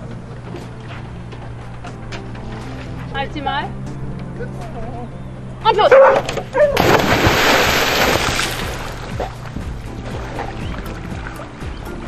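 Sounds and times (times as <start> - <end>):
background music: 0.0 - 12.0
big splash into water: 6.8 - 10.6.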